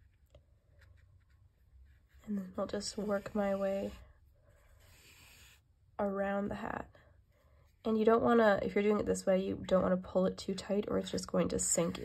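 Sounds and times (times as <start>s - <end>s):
soft scratching of yarn handling: 0.0s - 5.6s.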